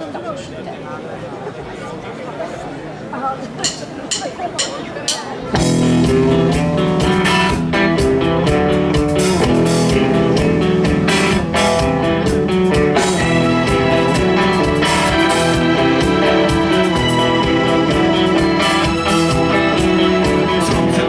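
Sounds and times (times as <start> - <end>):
rock band playing: 5.1 - 21.0.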